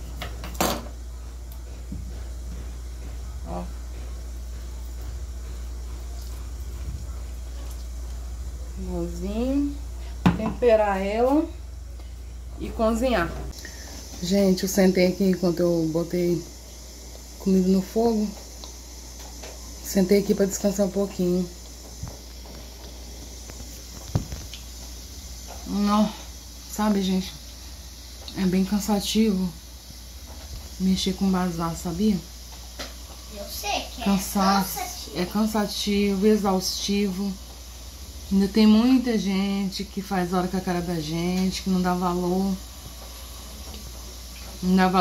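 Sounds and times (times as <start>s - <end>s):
steady low hum: 0.0s - 45.0s.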